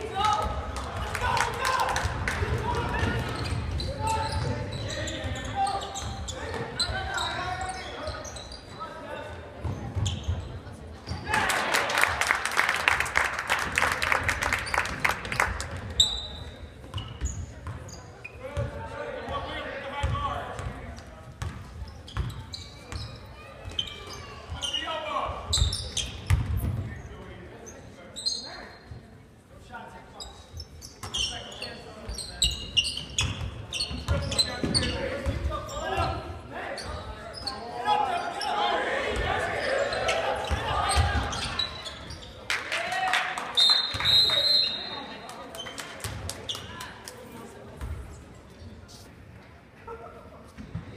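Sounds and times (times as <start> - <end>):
voices of spectators and players: 0.0 - 50.9.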